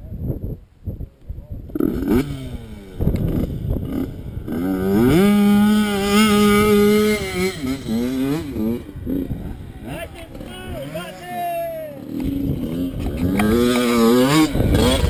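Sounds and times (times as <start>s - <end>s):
dirt bike engine revving: 1.7s - 15.0s.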